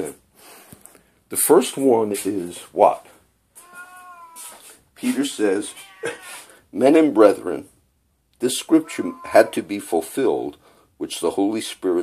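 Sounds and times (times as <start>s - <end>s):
cat meowing: 3.6s - 4.8s, 5.5s - 6.5s, 8.6s - 9.7s.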